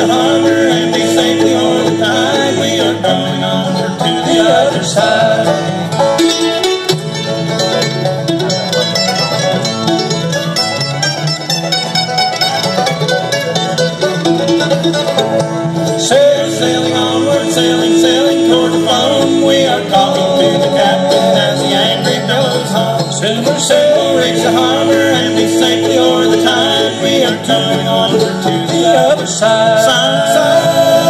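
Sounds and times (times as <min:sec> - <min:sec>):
bluegrass band playing: 0:00.0 - 0:31.0
mandolin lead: 0:00.0 - 0:31.0.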